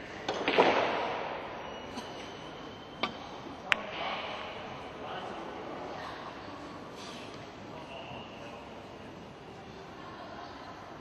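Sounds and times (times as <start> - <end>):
pool hall background hum: 0.0 - 11.0.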